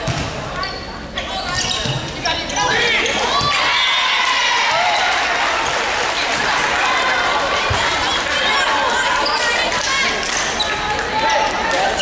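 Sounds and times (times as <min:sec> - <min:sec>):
volleyball hits: 0:00.0 - 0:00.5
shoe squeaks: 0:00.6 - 0:03.4
crowd shouting and cheering: 0:02.5 - 0:12.0.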